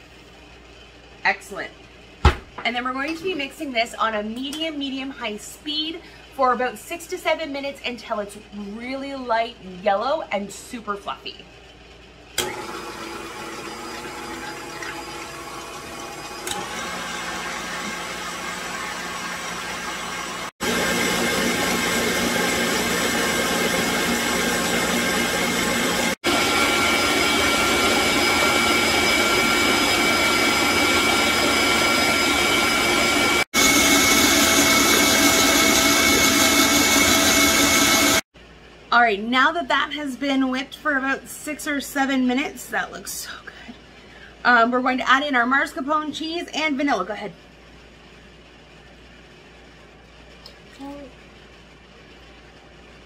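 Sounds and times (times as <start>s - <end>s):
stand mixer motor whine: 12.4s - 38.2s.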